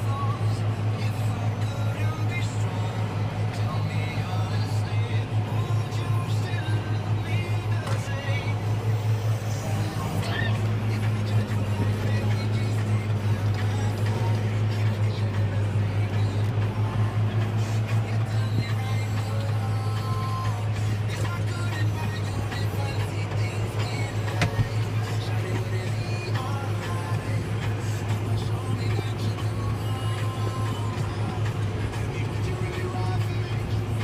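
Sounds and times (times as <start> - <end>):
music playing: 0.0 - 34.0
tractor diesel engine droning: 0.0 - 34.0.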